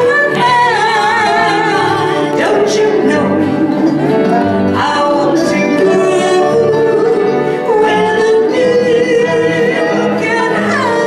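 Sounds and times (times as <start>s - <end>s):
acoustic guitar: 0.0s - 11.0s
lap slide guitar: 0.0s - 11.0s
women singing: 0.0s - 11.0s.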